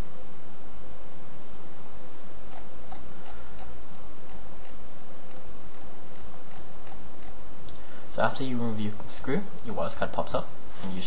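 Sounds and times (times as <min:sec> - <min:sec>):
steady hiss: 0:00.0 - 0:11.0
screwdriver ticking: 0:02.5 - 0:07.8.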